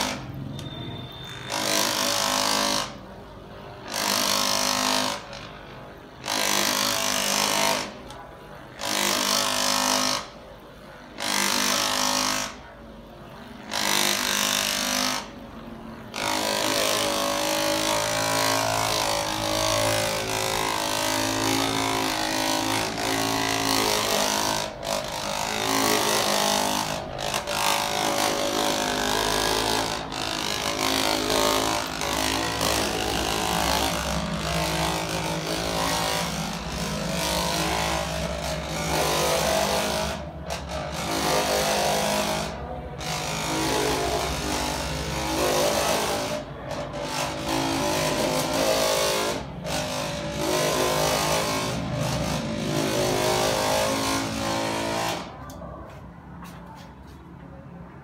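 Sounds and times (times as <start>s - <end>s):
massager motor buzzing: 0.0s - 3.1s, 3.8s - 10.4s, 13.6s - 41.4s.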